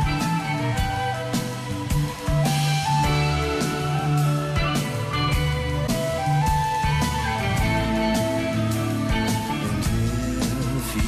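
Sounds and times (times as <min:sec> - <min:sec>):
bass guitar: 0:00.0 - 0:11.0
electric guitar: 0:00.0 - 0:11.0.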